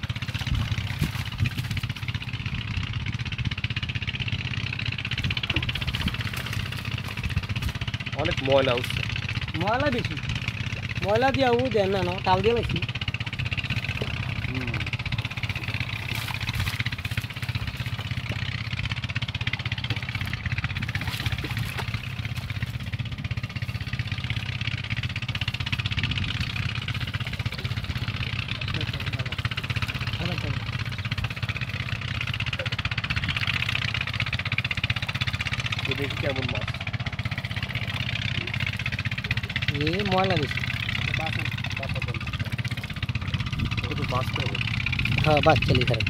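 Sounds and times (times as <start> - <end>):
engine running steadily: 0.0 - 46.0.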